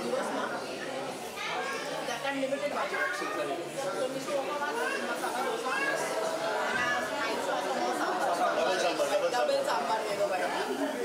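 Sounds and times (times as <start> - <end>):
several voices talking: 0.0 - 11.0.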